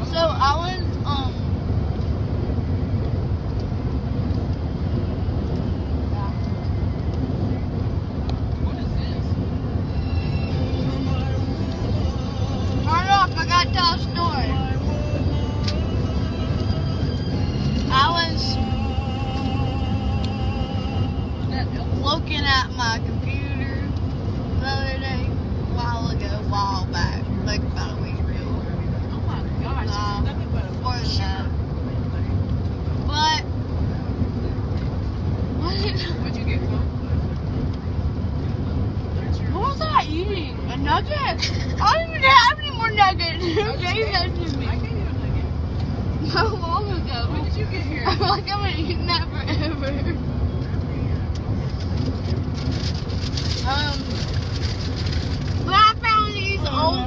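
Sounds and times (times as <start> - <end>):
car cabin road and engine rumble: 0.0 - 57.0.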